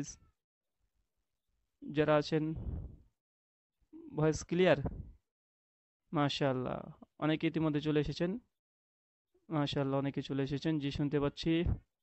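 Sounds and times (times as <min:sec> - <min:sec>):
man talking: 0:01.8 - 0:02.8, 0:04.0 - 0:05.1, 0:06.1 - 0:08.4, 0:09.5 - 0:11.8.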